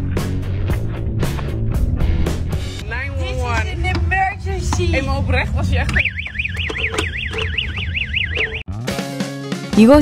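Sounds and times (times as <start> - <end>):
electronic alarm warbling: 6.0 - 8.7.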